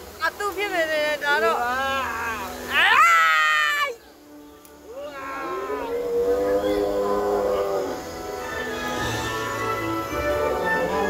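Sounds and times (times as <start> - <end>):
recorded dinosaur call: 5.1 - 9.6.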